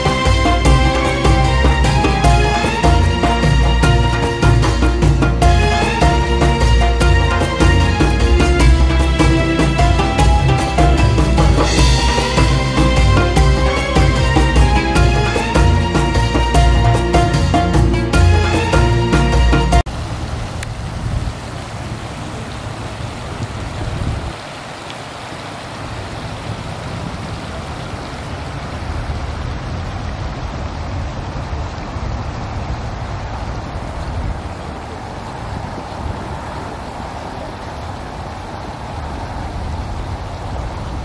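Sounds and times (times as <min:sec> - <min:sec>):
music: 0:00.0 - 0:19.9
fountain water splashing: 0:00.0 - 0:41.0.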